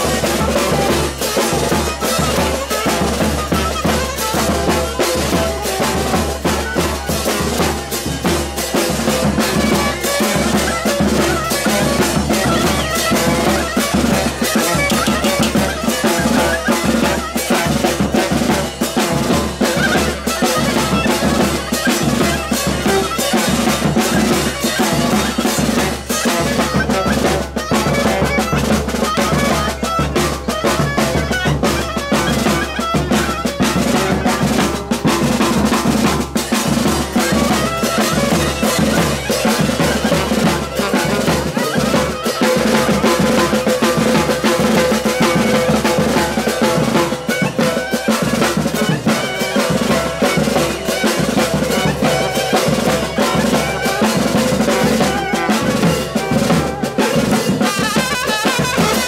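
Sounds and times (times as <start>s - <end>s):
bass drum and snare beating: 0.0s - 59.0s
brass band playing loudly: 0.0s - 59.0s.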